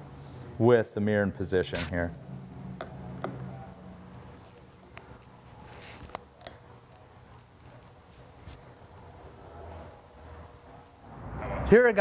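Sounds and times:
low steady hum: 1.8 - 12.0.

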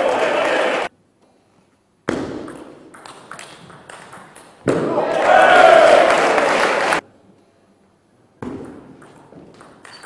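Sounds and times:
loud voices: 0.0 - 0.9, 4.9 - 7.0.

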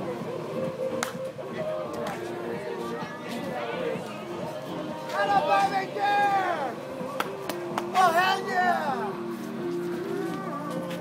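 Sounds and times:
background music: 0.0 - 11.0
crowd chatter: 0.0 - 11.0.

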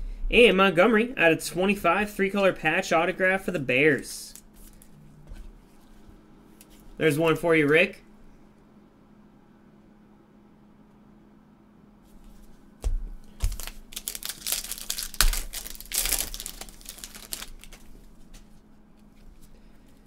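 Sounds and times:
wrapping crinkling and tearing: 13.3 - 19.5.

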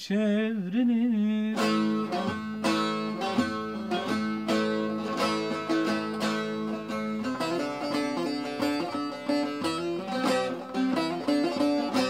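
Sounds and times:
long-necked lute melody: 1.5 - 12.0.

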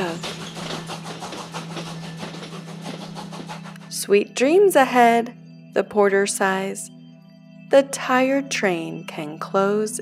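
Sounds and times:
train wheels clattering: 0.0 - 3.8.

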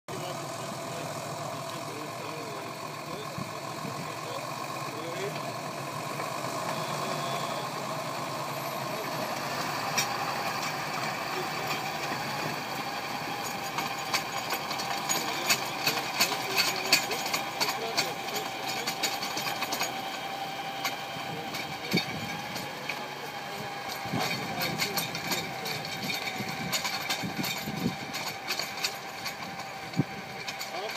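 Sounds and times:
tractor engine under load: 0.1 - 30.9
irregular clicks and knocks: 23.9 - 30.9.

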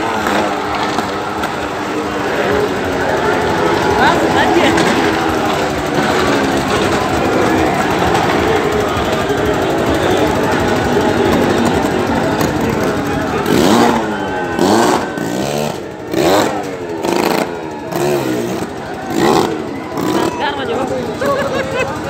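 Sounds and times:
loud noisy din: 0.0 - 22.0
loud shouted calls: 0.0 - 22.0.

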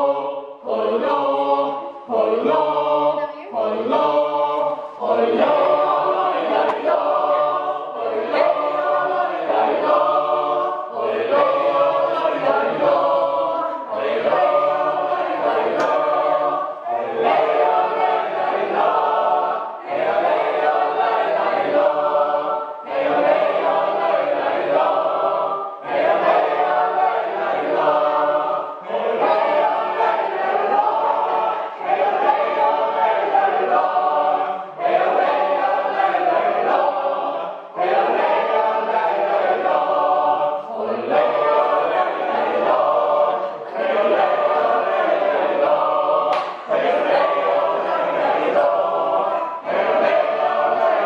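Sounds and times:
group of people singing: 0.0 - 51.0.

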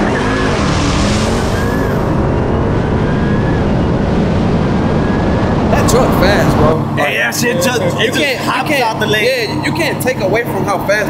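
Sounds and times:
cars accelerating hard: 0.0 - 10.9
faint engine whine: 0.0 - 11.0
wind rush: 0.0 - 11.0.

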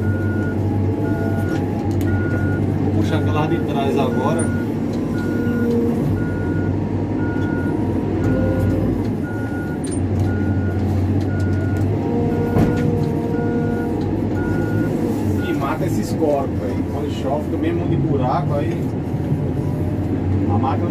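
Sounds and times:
reverse alarm beeping: 0.0 - 15.7
diesel engine running: 0.0 - 20.9.

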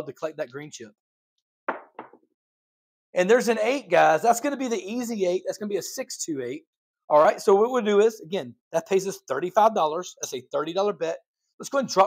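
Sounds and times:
dice clacking: 1.7 - 2.2.

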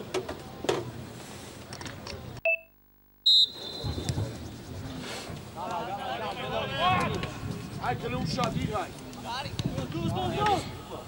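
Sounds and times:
short beep: 2.4 - 4.0.

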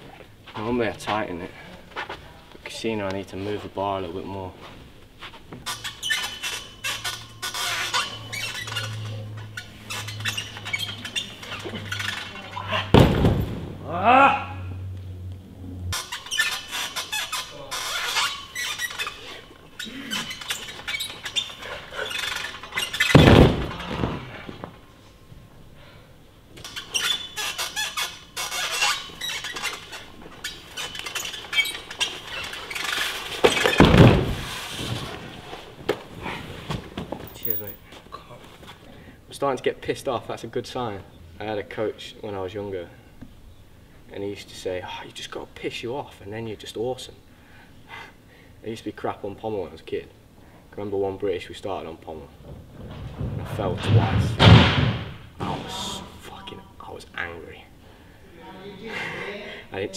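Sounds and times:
loud thumps: 12.9 - 13.9, 23.1 - 24.6, 33.4 - 34.6, 52.5 - 55.8
short cry: 13.8 - 14.8.

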